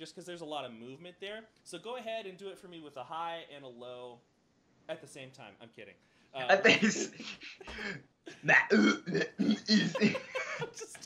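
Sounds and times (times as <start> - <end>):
men laughing: 6.5 - 8.5, 9.6 - 11.0.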